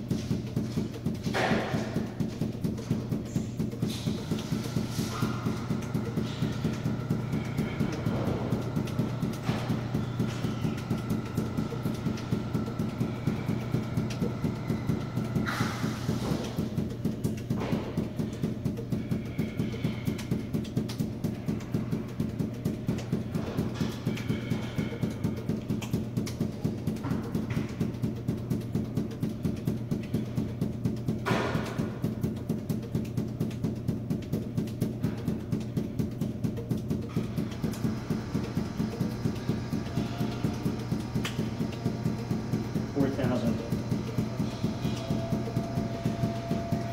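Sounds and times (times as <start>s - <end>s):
balls bouncing on hard floor: 0.0s - 46.9s.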